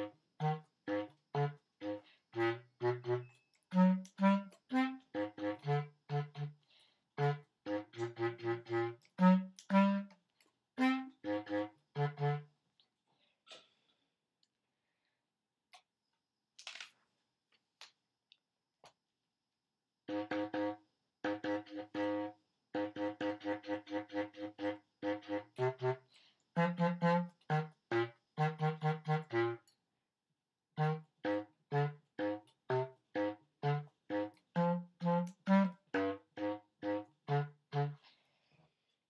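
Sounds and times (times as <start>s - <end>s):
bass clarinet short low notes: 0.0s - 6.6s, 10.8s - 12.5s, 30.8s - 38.0s.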